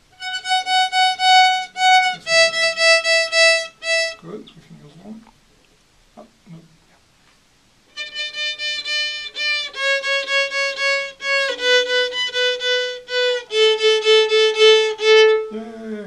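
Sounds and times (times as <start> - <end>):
violin short bowed strokes: 0.2 - 4.3, 7.9 - 16.0.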